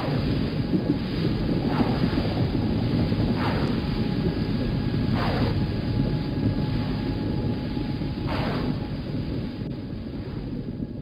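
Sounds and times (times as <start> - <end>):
deep steady rumble: 0.0 - 11.0.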